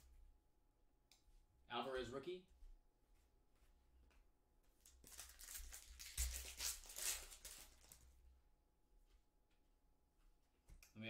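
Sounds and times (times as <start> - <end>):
foil wrapper crinkling and tearing: 5.0 - 8.0.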